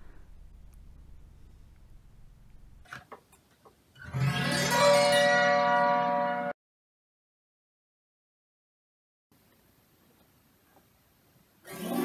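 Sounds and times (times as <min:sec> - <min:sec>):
autoharp chord strummed: 0:04.1 - 0:06.5.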